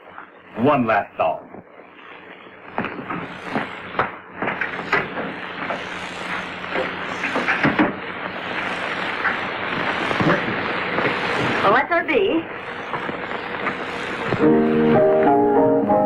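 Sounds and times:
soundtrack hiss and hum: 0.0 - 16.0.

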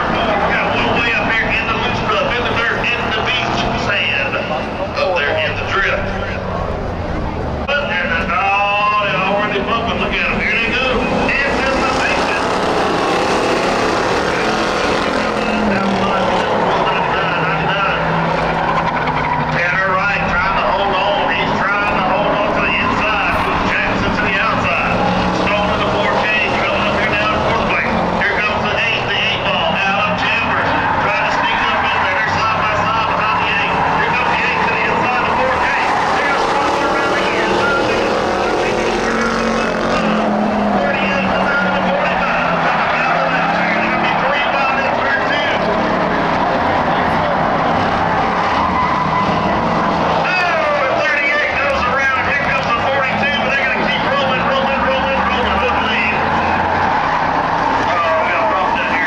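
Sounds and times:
race car engines on a track: 0.0 - 59.0.

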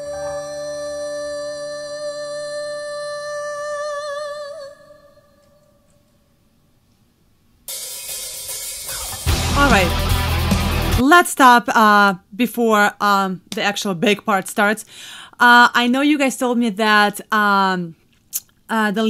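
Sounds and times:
cymbal wash: 7.7 - 11.0
rock band playing: 7.7 - 11.0.

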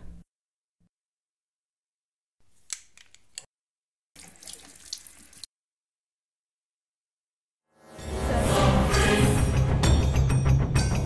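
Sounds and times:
water pouring into glass: 4.2 - 5.5.

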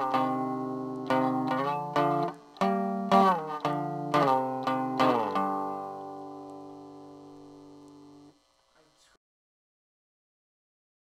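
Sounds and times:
guitar chord ringing out: 0.0 - 8.3.

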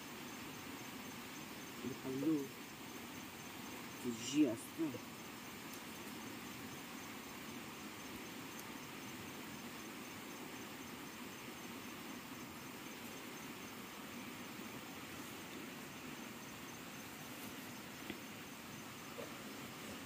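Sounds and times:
insects chirring in grass: 0.0 - 20.0.

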